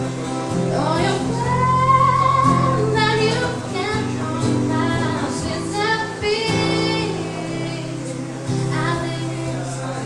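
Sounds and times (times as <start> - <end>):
acoustic guitar: 0.0 - 10.0
woman singing: 0.6 - 10.0.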